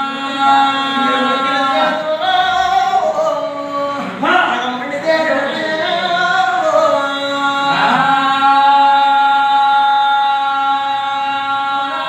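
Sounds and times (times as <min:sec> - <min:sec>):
man singing long held note: 0:00.0 - 0:12.0.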